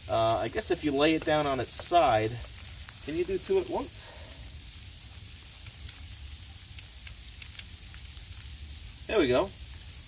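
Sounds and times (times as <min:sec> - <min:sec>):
light rain falling: 0:00.0 - 0:10.0.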